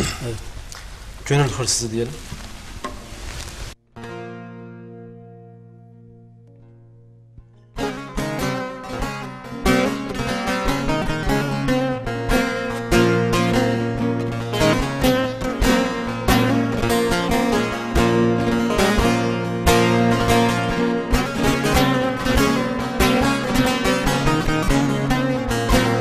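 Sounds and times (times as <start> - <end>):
long-necked lute picked and strummed: 3.9 - 26.0.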